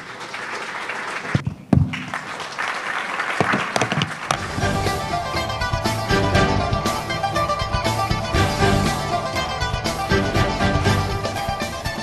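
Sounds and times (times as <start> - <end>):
audience applauding: 0.0 - 4.9
music: 4.4 - 12.0.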